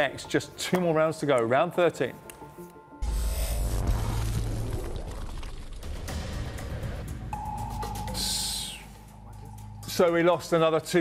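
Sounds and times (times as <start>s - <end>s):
held tone: 7.4s - 10.0s
man speaking: 8.1s - 11.0s.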